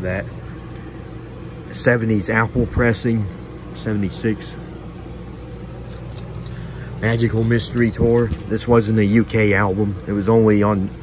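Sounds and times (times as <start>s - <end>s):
low background hum: 0.0s - 11.0s
cardboard record jackets rustling: 5.7s - 11.0s.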